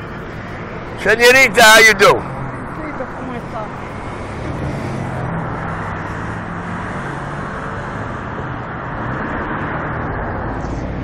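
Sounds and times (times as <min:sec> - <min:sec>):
city street traffic: 0:00.0 - 0:11.0
low engine hum: 0:00.0 - 0:11.0.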